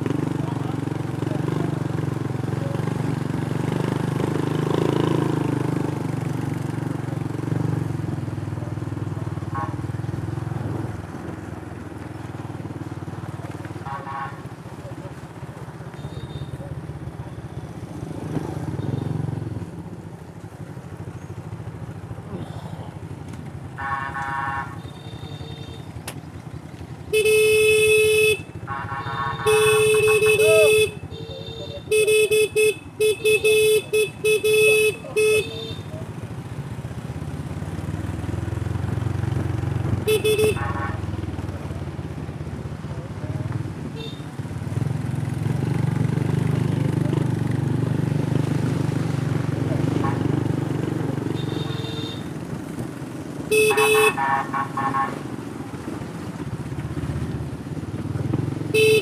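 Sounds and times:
horn honking: 9.4s - 10.2s, 13.8s - 14.6s, 15.9s - 16.7s, 23.6s - 26.0s, 27.1s - 36.0s, 40.0s - 41.2s, 43.9s - 44.3s, 51.2s - 52.4s, 53.5s - 55.4s, 58.7s - 59.0s
small motorcycle engines: 11.8s - 59.0s.

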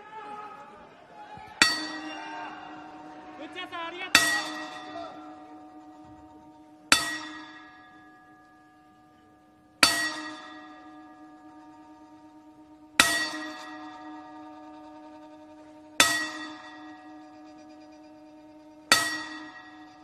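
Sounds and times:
gong bell clanging: 1.6s - 20.0s.

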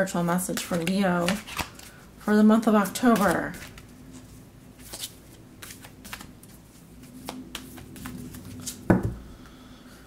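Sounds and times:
cards being shuffled: 0.5s - 2.0s, 2.8s - 3.9s, 4.8s - 8.9s.

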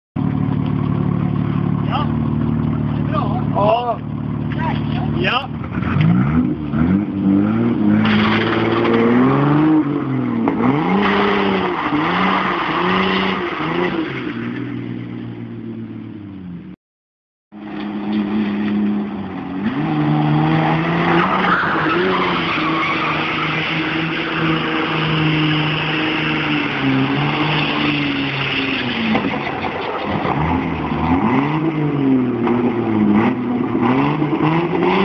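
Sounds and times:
car engine idling and revving: 0.2s - 16.8s, 17.5s - 35.0s.

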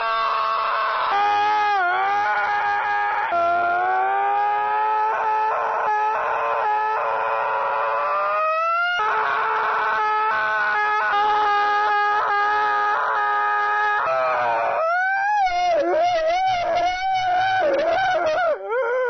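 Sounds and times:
person screaming: 0.0s - 19.0s.

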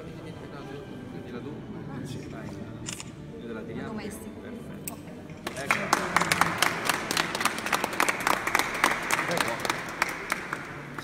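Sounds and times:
crowd applauding: 5.4s - 11.0s.

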